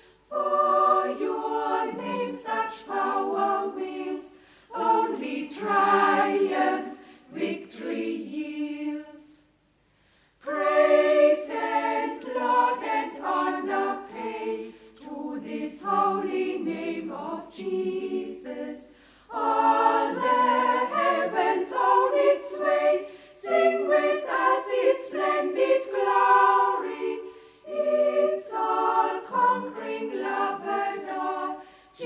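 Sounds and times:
choir singing a hymn: 0.0s - 9.6s, 10.4s - 32.0s.

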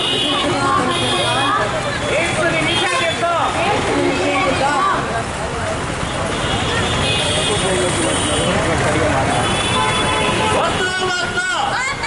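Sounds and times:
crowd voices: 0.0s - 12.0s
passing traffic: 0.0s - 12.0s.

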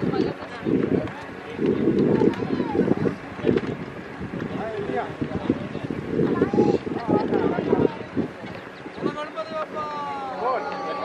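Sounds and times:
indistinct voices talking: 0.0s - 11.0s
wind buffeting microphone: 0.0s - 11.0s.

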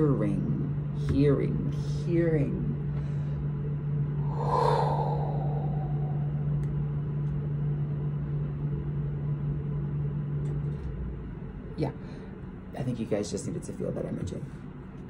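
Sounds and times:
steady low hum: 0.0s - 15.0s
breathy swish: 4.2s - 6.7s.

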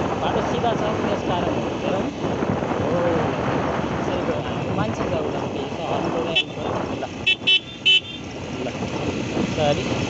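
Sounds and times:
motorcycle engine running: 0.0s - 10.0s
road noise: 0.0s - 10.0s
motorcycle horn beeping: 7.2s - 8.3s.

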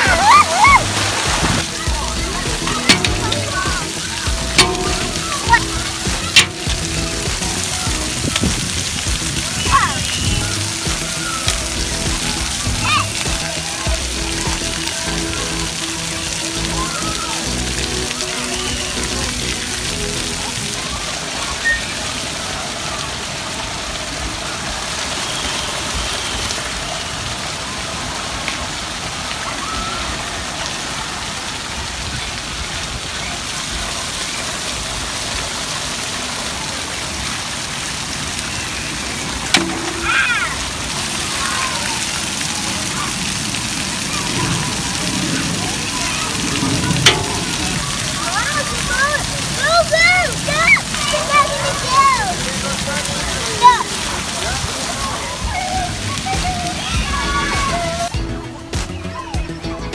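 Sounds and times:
water spouts spraying: 0.0s - 59.7s
faint voices: 0.0s - 59.9s
music: 0.1s - 21.0s, 55.5s - 59.9s.

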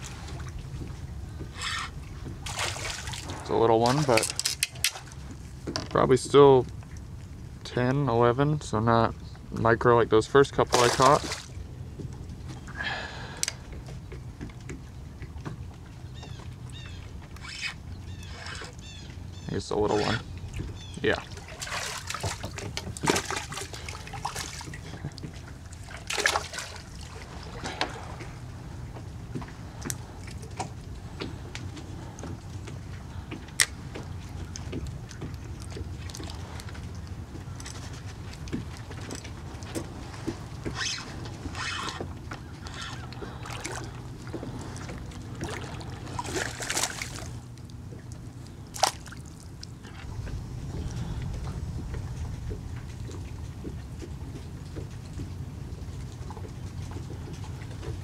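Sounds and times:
water lapping against hull: 0.0s - 58.0s
water splash: 2.4s - 5.2s, 10.7s - 11.6s, 21.2s - 28.3s, 43.2s - 47.4s, 48.7s - 53.4s.

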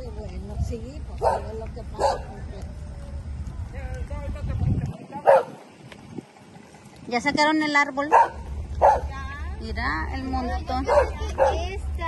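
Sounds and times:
dog barking sharply: 1.2s - 2.3s, 5.2s - 5.6s, 8.1s - 9.1s.

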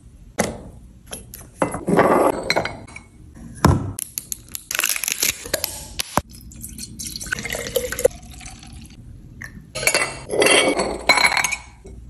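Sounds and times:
liquid pouring into glass carafe: 6.3s - 9.0s
glass bottles clinking: 9.7s - 12.0s.

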